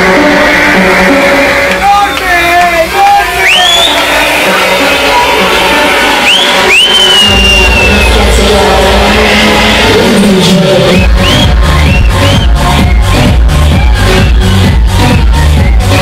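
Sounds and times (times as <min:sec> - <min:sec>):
club music with heavy bass: 0:00.0 - 0:16.0
crowd whooping: 0:00.0 - 0:16.0.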